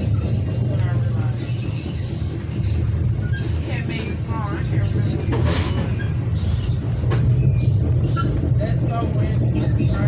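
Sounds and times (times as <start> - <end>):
faint voices: 0.0 - 10.0
train rumble inside car: 0.0 - 10.0.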